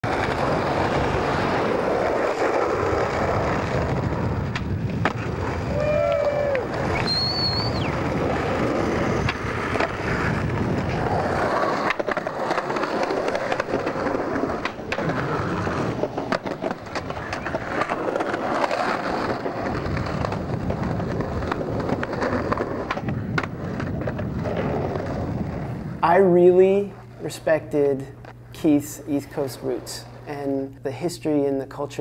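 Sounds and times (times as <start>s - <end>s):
skateboard clacks: 0.0s - 25.7s
skateboard wheels rolling on pavement: 0.0s - 28.4s
onlookers whooping and shouting: 5.6s - 7.9s.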